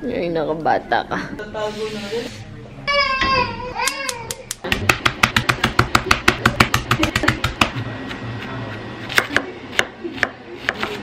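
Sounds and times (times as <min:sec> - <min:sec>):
knife chopping on cutting board: 0:04.7 - 0:07.8, 0:09.0 - 0:11.0.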